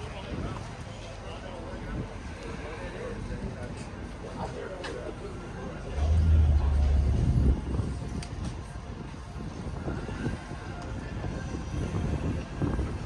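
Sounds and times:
pickup truck engine rumble: 5.7s - 8.2s.

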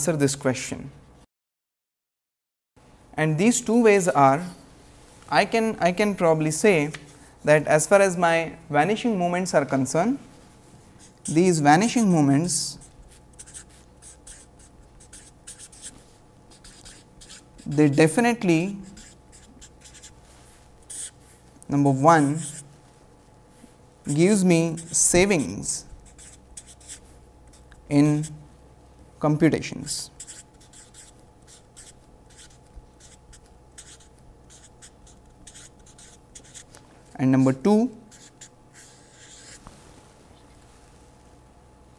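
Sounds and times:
marker pen scratching on paper: 11.0s - 11.4s, 12.8s - 20.2s, 20.8s - 21.4s, 22.2s - 22.7s, 24.1s - 28.4s, 30.2s - 36.7s, 38.1s - 39.7s.

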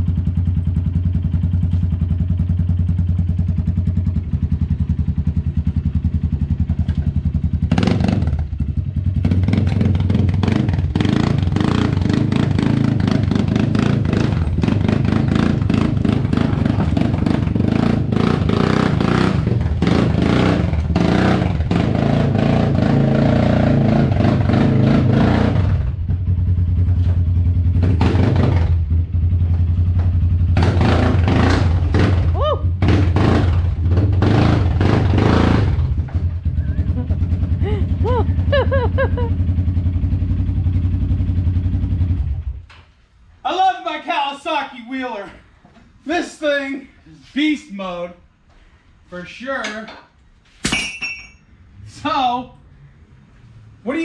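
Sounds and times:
atv engine running: 0.0s - 42.7s
rattling and clatter: 12.0s - 21.8s.

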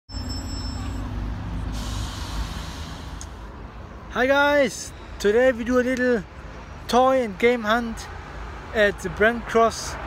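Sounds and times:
bus engines rumbling: 0.1s - 10.0s
air brake hiss: 1.6s - 3.4s.

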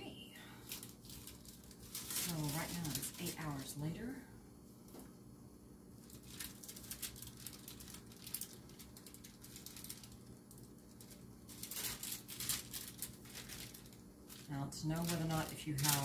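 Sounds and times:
plastic wrap crinkling: 0.5s - 4.1s, 6.0s - 16.0s.

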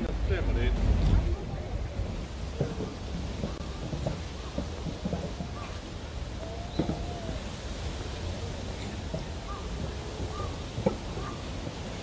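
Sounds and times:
faint scattered voices: 0.0s - 12.0s
wind rumble on microphone: 0.0s - 12.0s.

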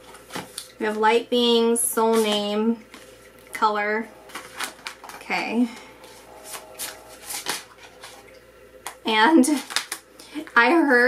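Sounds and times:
cards being shuffled: 4.3s - 5.3s, 6.0s - 8.2s, 8.8s - 10.1s.

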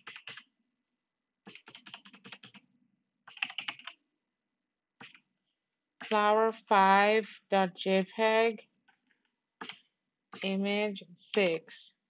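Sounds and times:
typing on computer keyboard: 0.0s - 0.5s, 1.4s - 4.0s, 5.0s - 5.3s, 9.6s - 10.5s.

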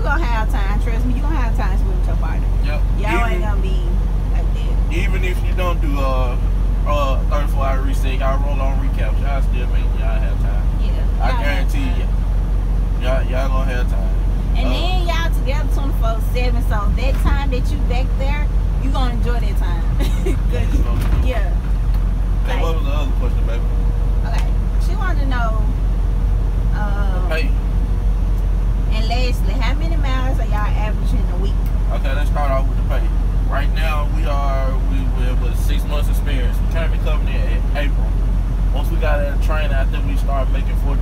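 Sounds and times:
people talking: 0.0s - 12.1s, 13.0s - 21.6s, 22.4s - 23.6s, 24.2s - 25.8s, 26.8s - 27.6s, 28.9s - 38.1s, 38.7s - 41.0s
truck engine rumble and road noise: 0.0s - 41.0s.

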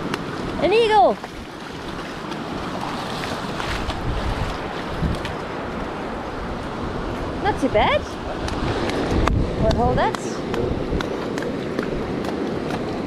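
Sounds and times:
surf washing over shallows: 0.0s - 13.0s
wind buffeting microphone: 0.0s - 13.0s.

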